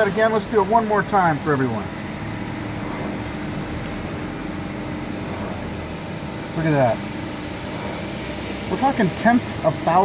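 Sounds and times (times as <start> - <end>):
machine humming: 0.0 - 10.0.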